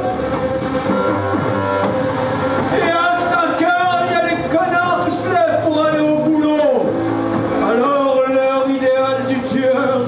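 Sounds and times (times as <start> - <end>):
keyboard synthesizer drone: 0.0 - 10.0
man singing or shouting: 2.7 - 6.9, 7.7 - 10.0.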